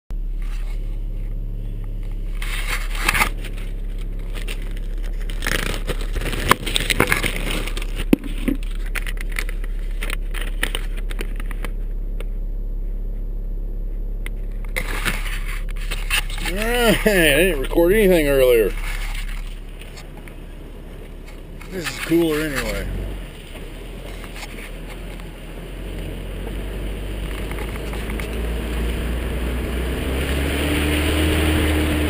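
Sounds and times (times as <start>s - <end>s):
engine idling hum: 0.1s - 32.0s
camera handling rubbing and knocks: 2.4s - 11.8s, 14.7s - 16.6s, 18.7s - 20.3s.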